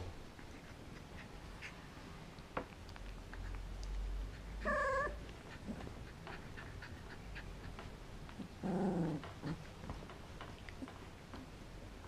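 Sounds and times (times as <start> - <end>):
puppy grumbling: 4.4 - 7.5, 8.4 - 9.7
puppy squeaking: 4.6 - 5.2.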